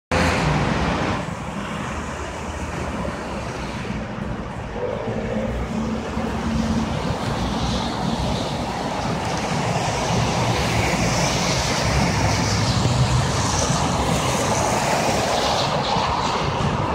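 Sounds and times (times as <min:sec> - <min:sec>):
road noise from traffic: 0:00.1 - 0:16.9.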